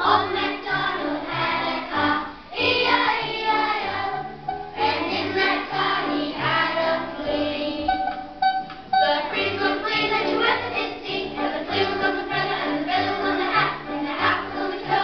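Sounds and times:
children singing: 0.0 - 15.0
instrumental accompaniment: 0.0 - 15.0.

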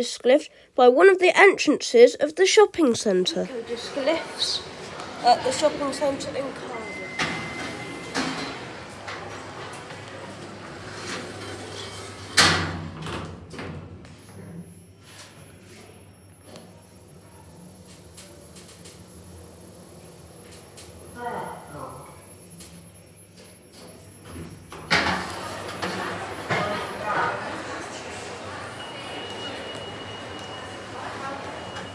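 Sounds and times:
lift doors sliding open: 3.4 - 14.5, 17.7 - 21.1, 23.7 - 31.9
lift doors sliding shut: 3.5 - 14.1, 23.8 - 31.9.

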